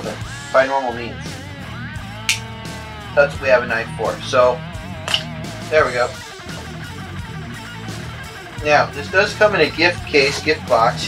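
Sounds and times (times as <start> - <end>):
guitar music: 0.0 - 11.0
pocket knife snapping open: 2.3 - 2.5, 5.1 - 5.3.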